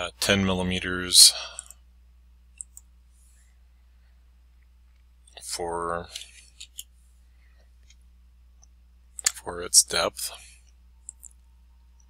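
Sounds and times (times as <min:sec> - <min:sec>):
computer key clicks: 0:02.6 - 0:02.9, 0:11.0 - 0:11.4.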